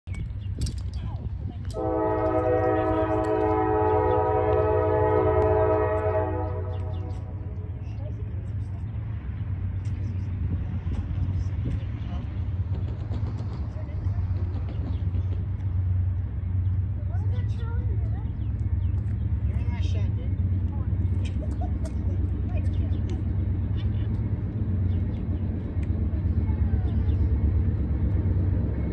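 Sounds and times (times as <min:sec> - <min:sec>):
locomotive air horn chord: 0:01.7 - 0:07.4.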